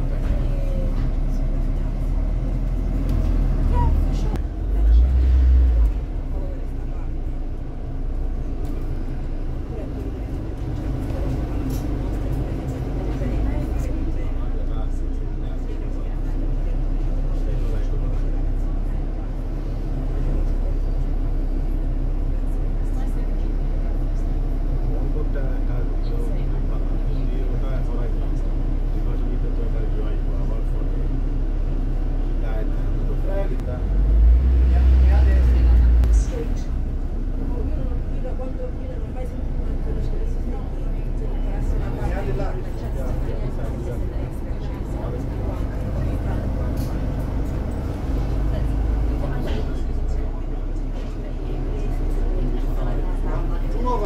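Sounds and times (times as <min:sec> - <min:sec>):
bus engine and road rumble: 0:00.0 - 0:54.0
passengers talking: 0:00.0 - 0:54.0.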